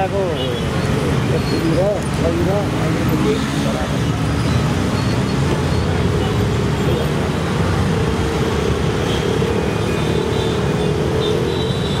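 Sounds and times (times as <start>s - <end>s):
cars passing close by: 0.0s - 12.0s
motorcycles and scooters passing: 0.0s - 12.0s.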